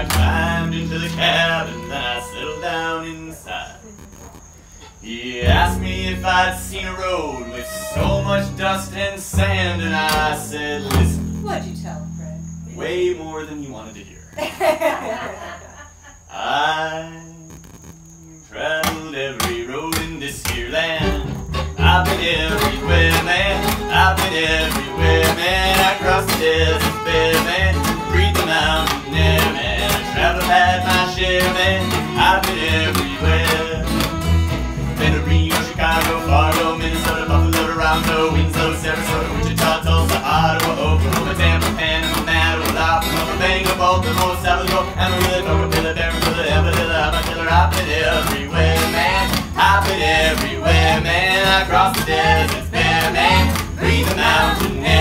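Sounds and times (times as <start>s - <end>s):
plucked upright bass: 0.0s - 2.1s, 5.4s - 13.5s, 18.8s - 55.0s
strummed acoustic guitar: 0.0s - 2.9s, 5.4s - 13.3s, 18.6s - 55.0s
bowed fiddle melody: 0.0s - 3.0s, 5.6s - 13.0s, 20.7s - 55.0s.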